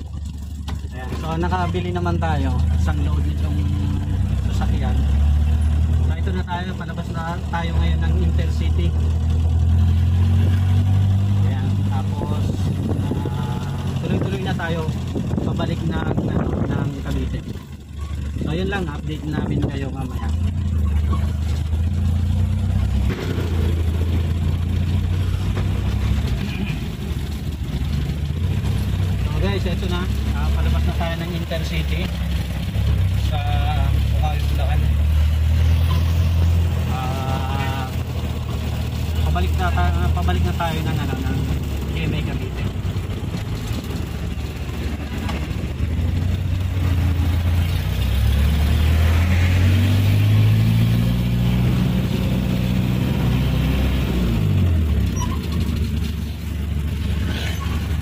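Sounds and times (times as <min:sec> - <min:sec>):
truck engine droning: 0:00.0 - 0:58.0
truck engine revving: 0:00.0 - 0:58.0.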